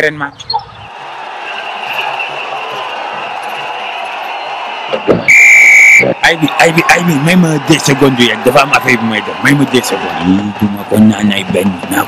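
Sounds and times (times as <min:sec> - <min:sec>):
crowd noise: 0:00.0 - 0:12.0
referee whistle blast: 0:05.2 - 0:06.2.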